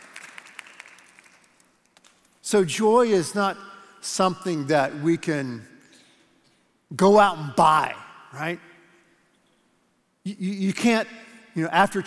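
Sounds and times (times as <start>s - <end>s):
faint scattered applause: 0.0s - 1.7s.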